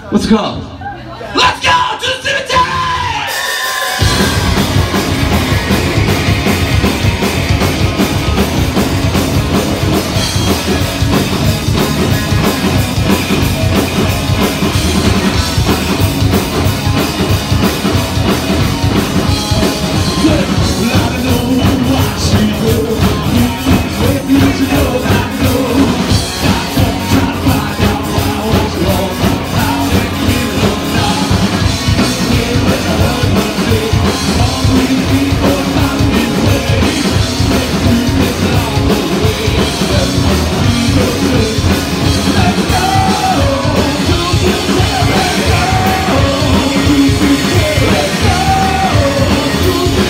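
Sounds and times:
live rock band playing: 0:01.3 - 0:50.0
shouted singing: 0:23.4 - 0:50.0.

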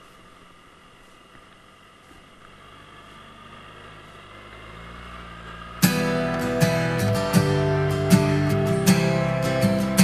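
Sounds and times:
scooter engine pulling away: 0:00.4 - 0:10.0
strummed acoustic guitar music: 0:05.8 - 0:10.0.

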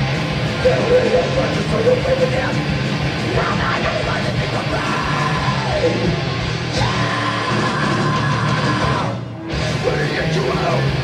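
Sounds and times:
heavy metal band playing: 0:00.0 - 0:11.0
shouted vocal: 0:03.2 - 0:11.0.

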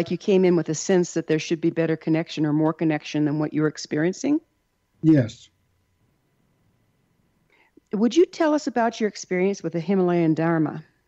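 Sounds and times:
faint breath: 0:07.5 - 0:07.9.

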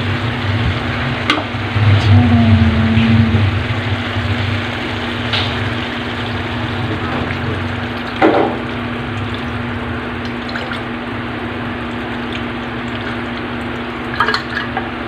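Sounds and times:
low hum: 0:00.0 - 0:14.0
meat sizzling in a wok: 0:03.6 - 0:10.2.

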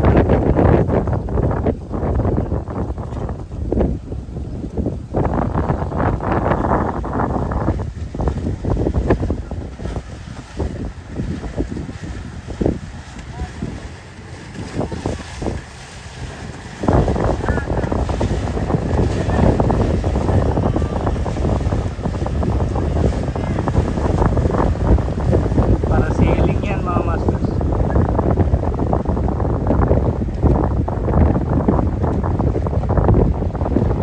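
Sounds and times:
motorboat passing: 0:00.0 - 0:34.0
wind buffeting microphone: 0:00.0 - 0:34.0.

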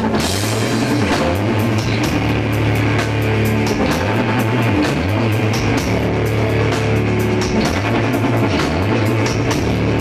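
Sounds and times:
bass guitar: 0:00.0 - 0:10.0
drums and cymbals: 0:00.0 - 0:10.0
guitar: 0:00.0 - 0:10.0.

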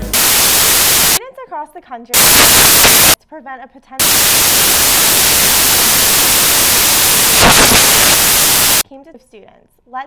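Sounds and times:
loud static hiss: 0:00.0 - 0:01.2, 0:02.2 - 0:03.2, 0:04.0 - 0:08.8.

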